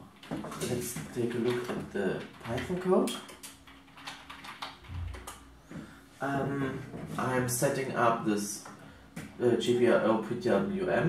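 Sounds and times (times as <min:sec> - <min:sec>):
keyboard keystrokes: 0:00.2 - 0:05.5.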